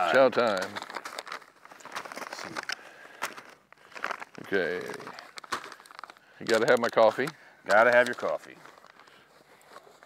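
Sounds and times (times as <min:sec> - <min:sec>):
plastic packets crinkling: 0:00.0 - 0:10.0.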